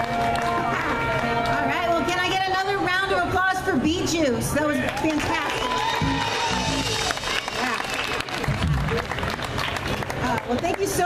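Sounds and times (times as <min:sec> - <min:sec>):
crowd applauding: 0:00.0 - 0:01.7, 0:04.8 - 0:11.0
music: 0:00.0 - 0:03.2, 0:05.8 - 0:07.7.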